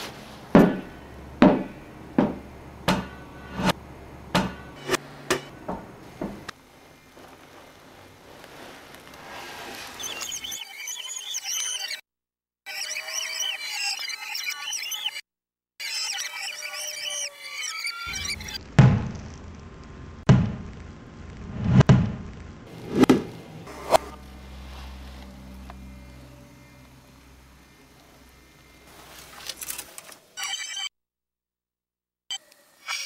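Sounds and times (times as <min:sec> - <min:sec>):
low hum: 0:19.3 - 0:28.9
steady tone: 0:22.7 - 0:28.9.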